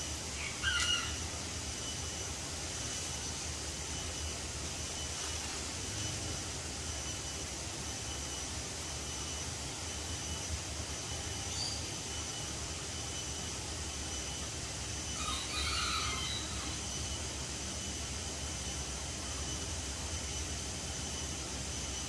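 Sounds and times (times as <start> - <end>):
faint high-pitched pulsing drone: 0.0 - 22.0.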